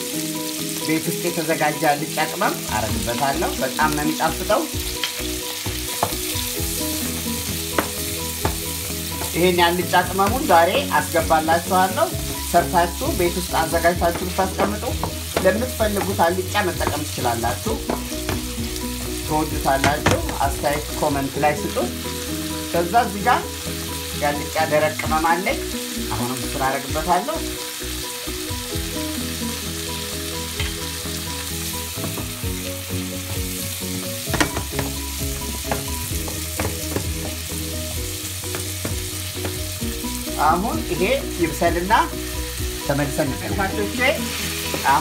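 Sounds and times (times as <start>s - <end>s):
vegetables sizzling in oil: 0.0s - 45.0s
wooden spoon scraping a pan: 13.0s - 18.9s, 34.2s - 40.3s.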